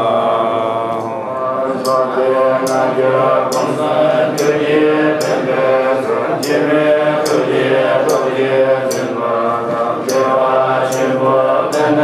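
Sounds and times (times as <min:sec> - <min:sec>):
monks chanting in low drone: 0:00.0 - 0:12.0.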